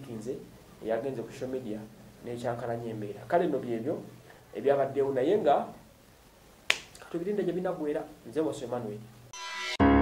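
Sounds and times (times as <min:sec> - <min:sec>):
man speaking: 0:00.0 - 0:05.8, 0:07.0 - 0:09.2.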